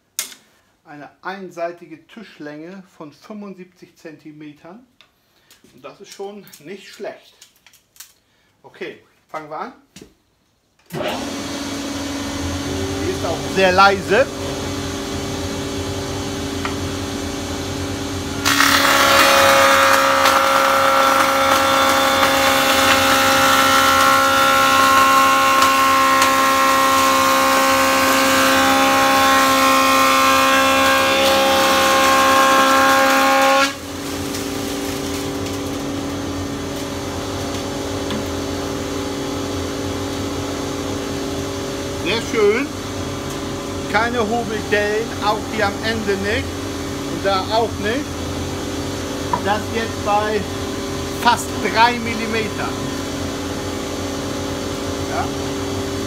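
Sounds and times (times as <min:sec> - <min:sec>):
planer cutting board with whine: 0:10.9 - 0:43.0, 0:43.6 - 0:56.0
planer running hum: 0:11.0 - 0:56.0.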